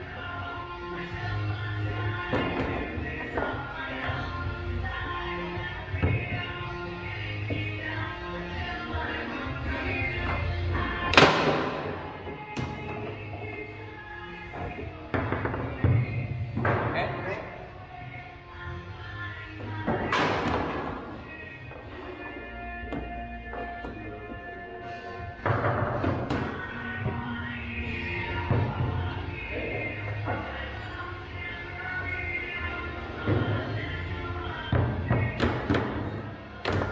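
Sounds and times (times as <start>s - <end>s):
background music: 0.0s - 36.9s.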